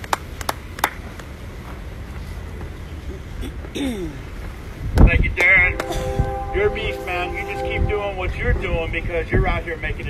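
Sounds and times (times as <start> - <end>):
wind rumble on microphone: 4.7 - 10.0.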